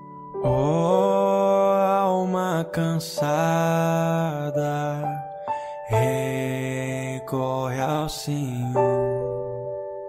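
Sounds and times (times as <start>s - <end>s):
person singing a hymn slowly: 0.4s - 5.3s, 5.9s - 9.0s.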